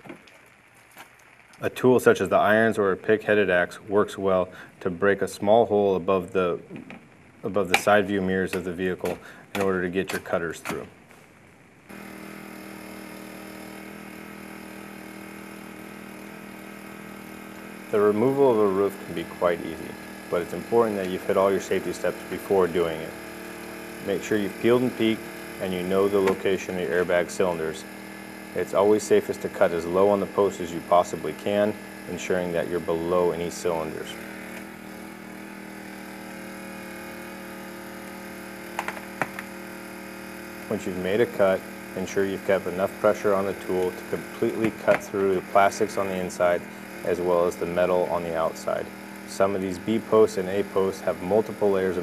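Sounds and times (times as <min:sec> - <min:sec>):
steady hum: 0:00.0 - 0:52.0
engine running steadily: 0:11.9 - 0:52.0.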